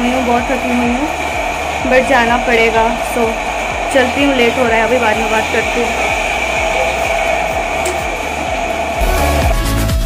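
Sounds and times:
background music with steady beat: 0.0 - 10.0
dance track with heavy bass: 0.0 - 10.0.

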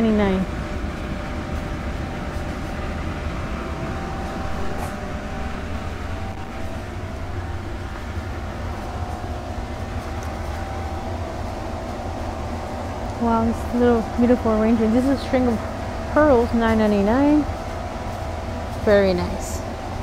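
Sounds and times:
ventilation fans droning: 0.0 - 20.0.

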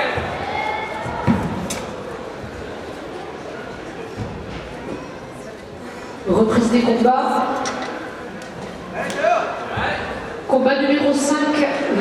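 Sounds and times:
reverberant sports hall noise: 0.0 - 12.0.

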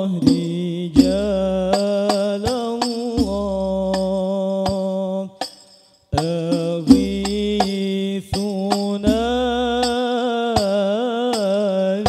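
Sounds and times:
man singing through a microphone: 0.0 - 12.0
frame drum strikes: 0.2 - 10.0.

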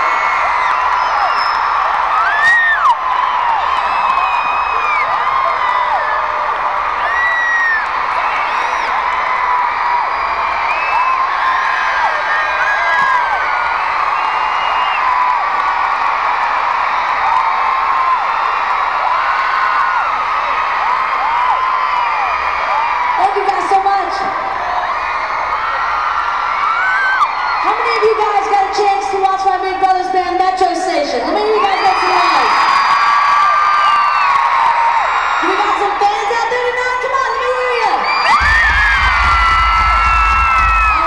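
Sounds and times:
arena crowd cheering: 0.0 - 41.0.

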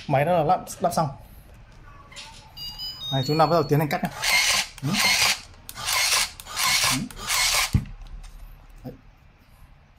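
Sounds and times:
tape dispenser rasping: 4.1 - 7.8.

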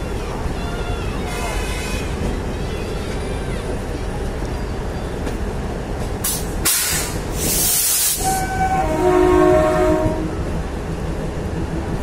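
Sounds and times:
train horn blasts: 8.2 - 10.5.

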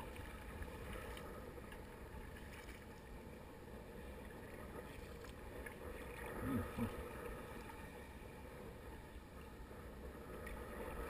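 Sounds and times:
water sloshing against kayak: 0.0 - 11.0
low voice-like sound: 6.3 - 7.0.

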